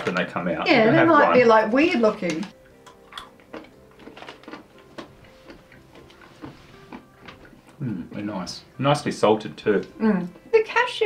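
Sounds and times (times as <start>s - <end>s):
nuts being chewed: 2.5s - 7.9s.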